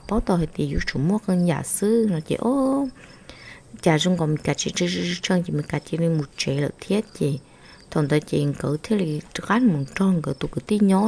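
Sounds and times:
person narrating: 0.0 - 3.0, 3.6 - 11.0
faint high chirping: 0.0 - 11.0.

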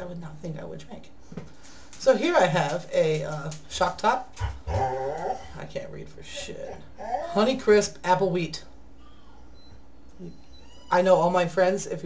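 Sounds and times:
low room hum: 0.0 - 12.0
pet high-pitched calls: 9.0 - 11.0.

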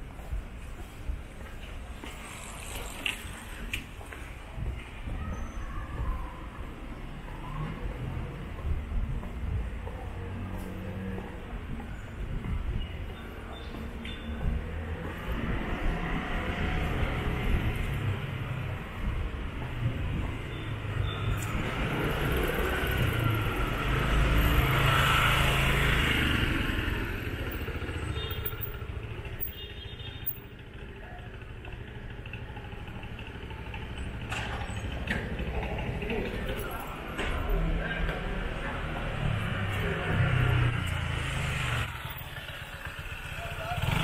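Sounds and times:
street traffic noise: 0.0 - 44.0
motor scooter passing: 14.6 - 29.4, 30.5 - 44.0.

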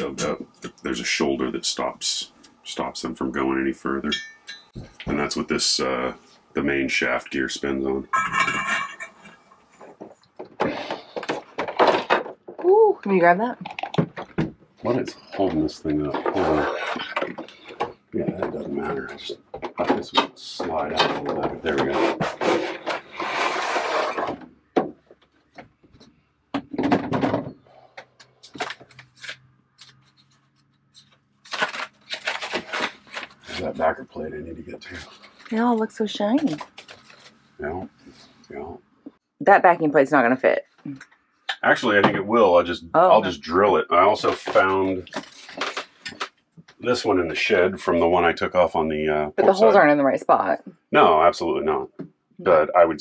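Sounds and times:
insulation crackling and crinkling: 0.0 - 39.2, 40.8 - 48.3
rough scraping rub: 21.6 - 24.4.

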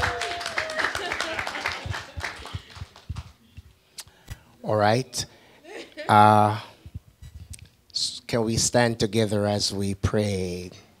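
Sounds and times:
audience applause: 0.0 - 3.4.

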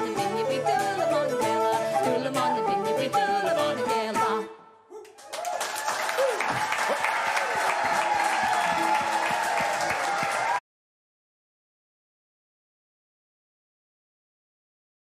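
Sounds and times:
person singing with instruments: 0.0 - 5.0
audience applause: 5.0 - 10.6
people cheering: 5.0 - 10.6.

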